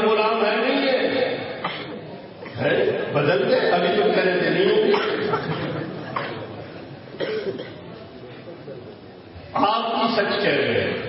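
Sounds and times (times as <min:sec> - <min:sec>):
person coughing: 0:01.6 - 0:02.6, 0:04.9 - 0:06.5, 0:07.2 - 0:07.8.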